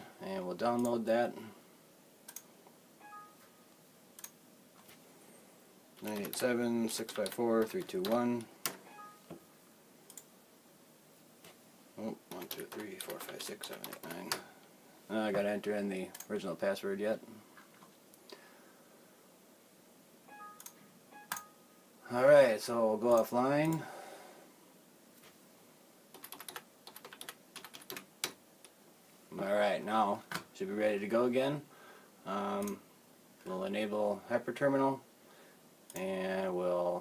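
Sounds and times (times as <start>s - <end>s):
computer mouse clicks: 2.3s - 2.5s, 4.2s - 4.4s, 10.1s - 10.3s
computer alert chime: 3.0s - 3.5s, 8.9s - 9.3s, 20.3s - 21.8s.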